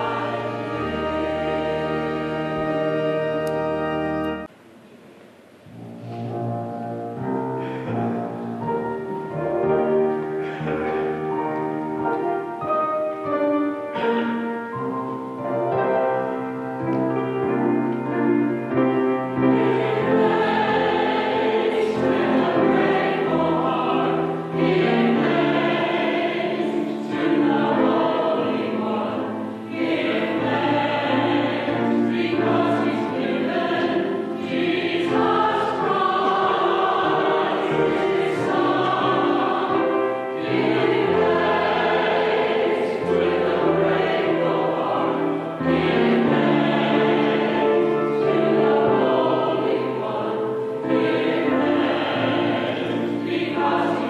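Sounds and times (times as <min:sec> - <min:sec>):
choir singing an anthem: 0:00.0 - 0:04.5, 0:18.7 - 0:54.0.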